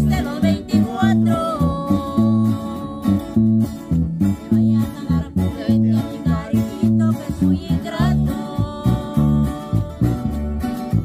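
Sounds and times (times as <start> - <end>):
acoustic guitars strumming: 0.0 - 11.0
electric bass guitar: 0.0 - 11.0.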